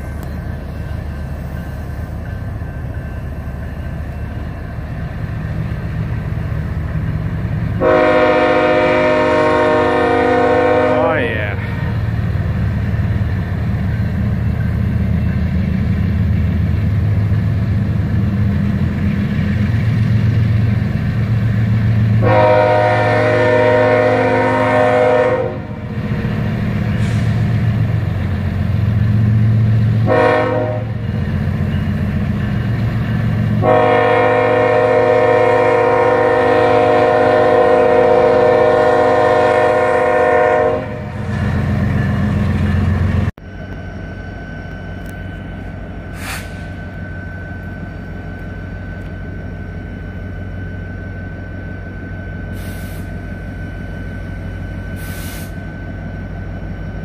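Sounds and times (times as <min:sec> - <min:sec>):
locomotive engines rumbling: 0:00.0 - 0:57.0
locomotive air horn blasts: 0:07.8 - 0:11.5, 0:22.2 - 0:25.8, 0:30.0 - 0:31.0, 0:33.6 - 0:41.2.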